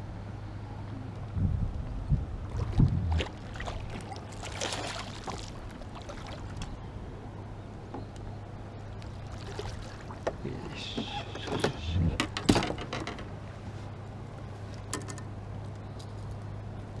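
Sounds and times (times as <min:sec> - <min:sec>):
steady low hum: 0:00.0 - 0:17.0
fish splashing in a net: 0:02.5 - 0:06.6, 0:09.0 - 0:10.2.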